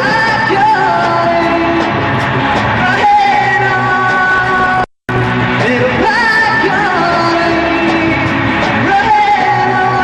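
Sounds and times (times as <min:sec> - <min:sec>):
rock band with electric guitar: 0:00.0 - 0:10.0
man singing: 0:05.6 - 0:10.0.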